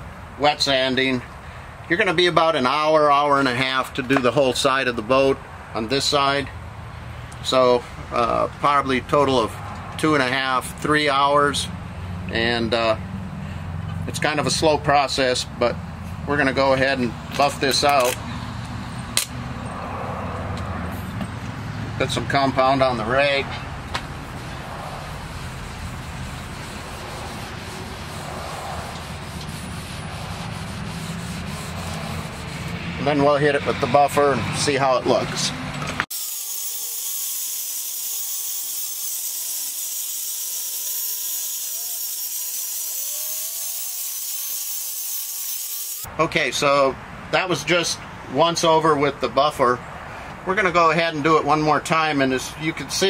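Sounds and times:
distant road traffic rumble: 0.0s - 36.1s, 46.0s - 53.0s
sharp click: 19.2s - 19.4s.

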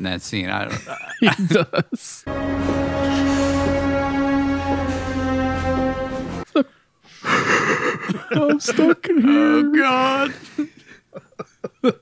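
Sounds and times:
man laughing breathily: 0.7s - 2.2s, 6.5s - 9.0s, 10.4s - 12.0s
film score music with held notes: 2.2s - 6.5s.

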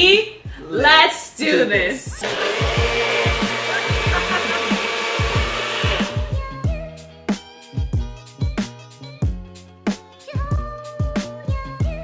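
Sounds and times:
music with steady drum beat: 2.0s - 12.0s
blender running: 2.2s - 6.4s.

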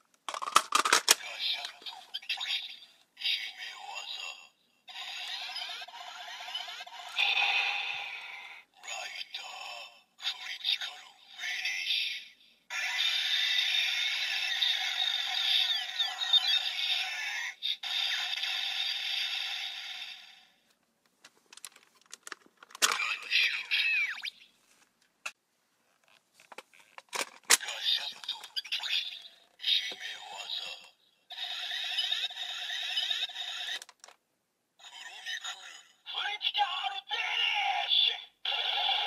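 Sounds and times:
toy electronic voice and music: 1.1s - 20.4s, 22.8s - 24.4s, 27.6s - 33.8s, 34.8s - 39.0s.

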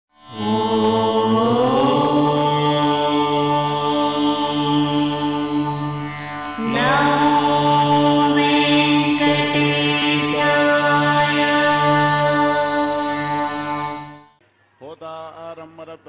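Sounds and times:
steady drone: 0.3s - 14.3s
long held melodic notes: 0.3s - 14.4s.

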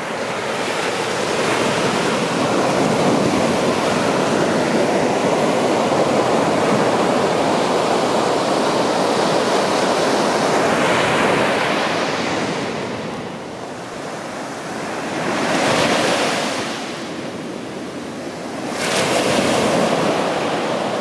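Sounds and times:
ocean waves breaking on beach: 0.0s - 21.0s.

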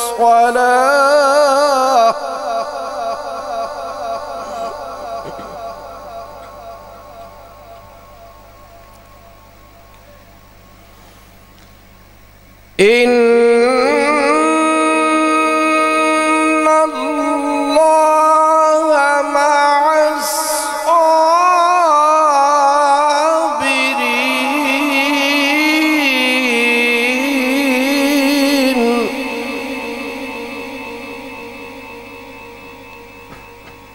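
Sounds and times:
man reciting melodically: 0.0s - 8.0s, 12.8s - 33.9s
amplifier hiss: 0.0s - 17.2s, 22.9s - 33.9s
electrical hum: 0.0s - 33.9s.

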